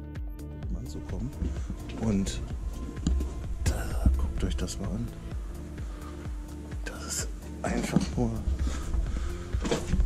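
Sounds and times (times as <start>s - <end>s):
low rumble: 0.9s - 6.5s.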